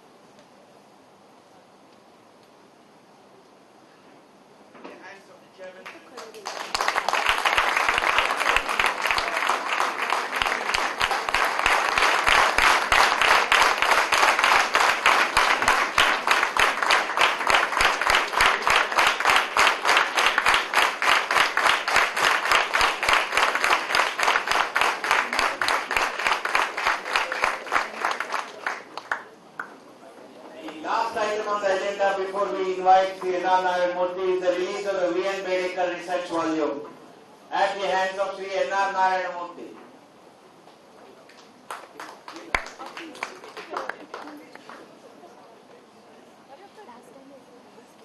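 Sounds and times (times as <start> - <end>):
audience applauding: 5.8 - 29.9, 41.3 - 45.4.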